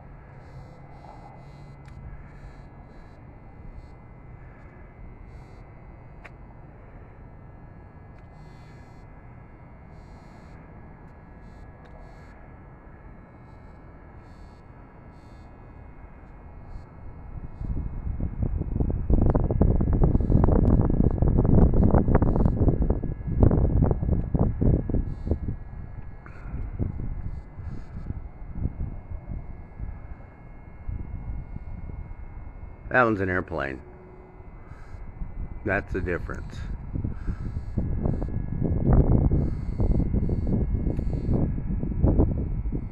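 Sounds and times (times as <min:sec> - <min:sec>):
airplane passing overhead: 0:00.0 - 0:42.9.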